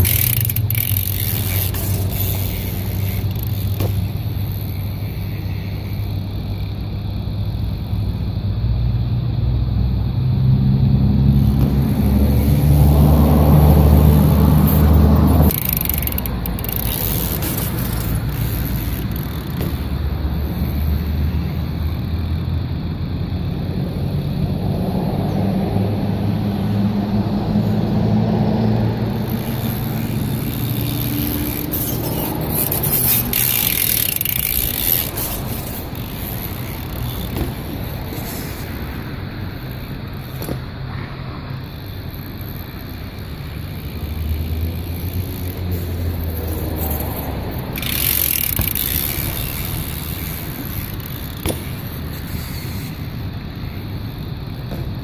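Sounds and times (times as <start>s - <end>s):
bike tyres rolling on concrete: 0.0s - 8.4s, 10.0s - 55.0s
vehicle engine running: 0.0s - 40.9s, 41.5s - 52.5s.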